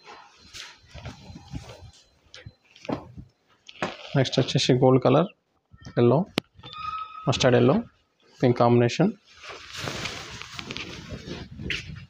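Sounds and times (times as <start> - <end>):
cloth rustling: 9.2 - 12.0.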